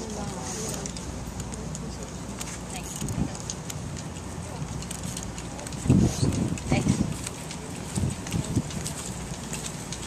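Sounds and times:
indistinct background voices: 0.0s - 10.0s
steady low rumble: 0.0s - 10.0s.

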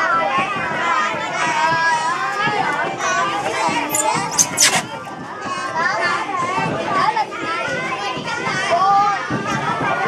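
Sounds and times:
children talking and laughing: 0.0s - 10.0s.

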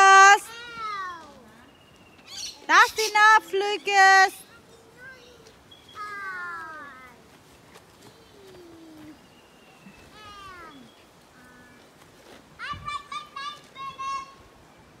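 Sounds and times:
children calling out: 0.0s - 1.7s, 4.4s - 7.3s, 10.0s - 11.8s, 12.6s - 14.6s.

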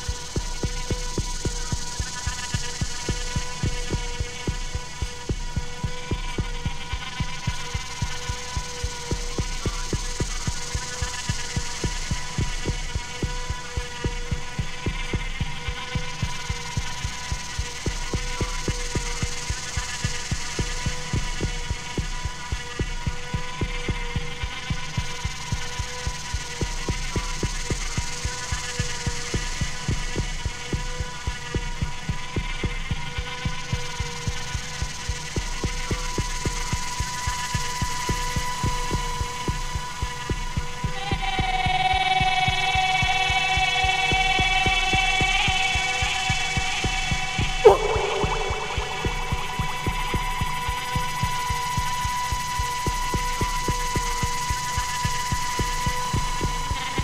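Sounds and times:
electronic music with low pulse: 0.0s - 57.0s.

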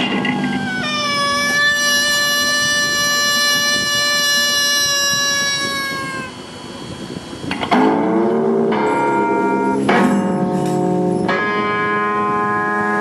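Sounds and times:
electric guitar notes: 0.0s - 13.0s.

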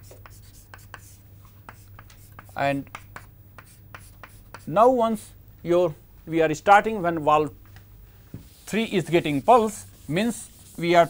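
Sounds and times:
chalk tapping and scraping on chalkboard: 0.0s - 4.7s, 8.4s - 11.0s
low steady hum: 0.0s - 11.0s.

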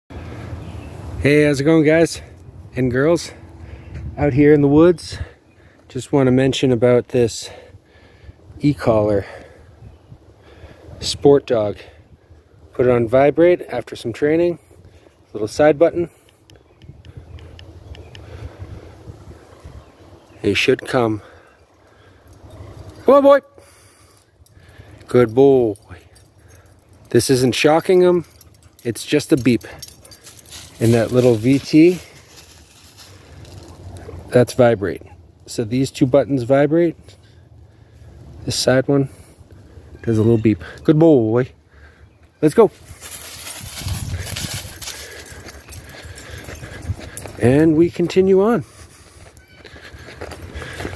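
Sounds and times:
wind rumbling on microphone: 16.5s - 20.4s, 42.8s - 47.4s
footsteps on dry leaves: 30.1s - 34.2s, 42.7s - 50.9s.

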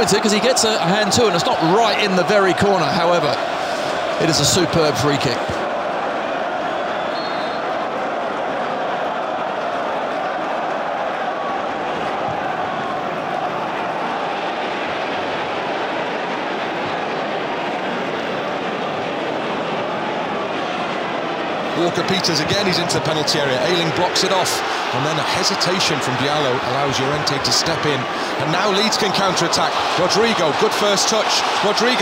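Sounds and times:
stadium crowd noise: 0.0s - 32.0s.

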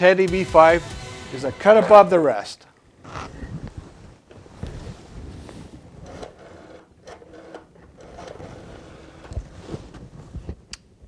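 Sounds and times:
clothing and beanbag shifting: 3.1s - 6.0s, 9.3s - 10.6s.

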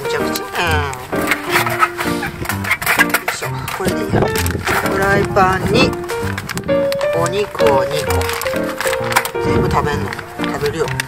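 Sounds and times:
background music: 0.0s - 11.0s
sliding falling tone: 4.0s - 9.5s.

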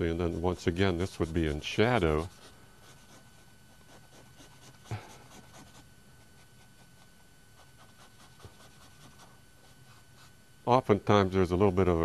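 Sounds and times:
drawing stick scratching paper: 0.1s - 10.3s.

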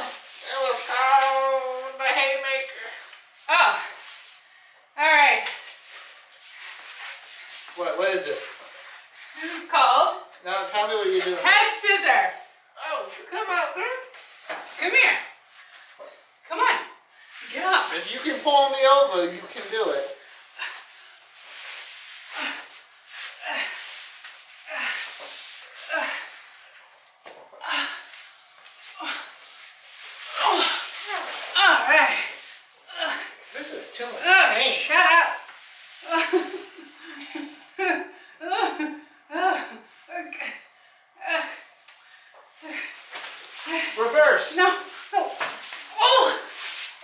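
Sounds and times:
strained effort sounds: 19.4s - 47.0s
man and woman laughing: 36.1s - 39.7s.

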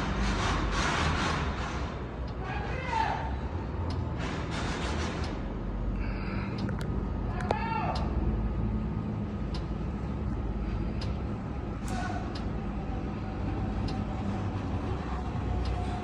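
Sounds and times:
low mechanical hum: 0.0s - 16.0s
faint clicks: 6.4s - 8.1s.

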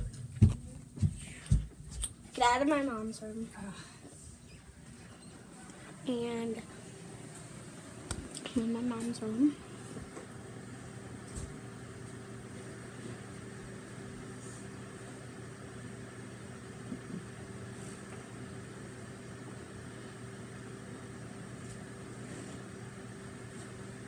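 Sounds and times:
appliance hum: 0.0s - 24.0s.

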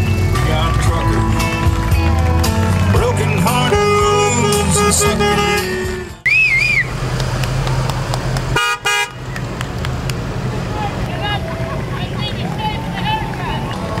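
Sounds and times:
low vehicle engine hum: 0.0s - 14.0s
crowd calling and whistling: 0.1s - 7.0s, 11.1s - 14.0s
car horn toot: 3.4s - 6.9s, 8.6s - 9.3s
warbling whistle: 6.2s - 6.9s.

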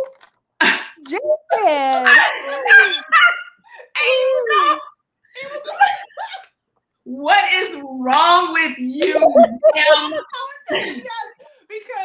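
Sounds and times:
women laughing loudly: 9.0s - 11.3s.

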